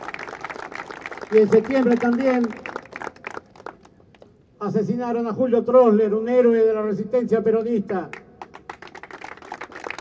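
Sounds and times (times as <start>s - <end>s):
small crowd clapping: 0.0s - 4.3s, 8.1s - 10.0s.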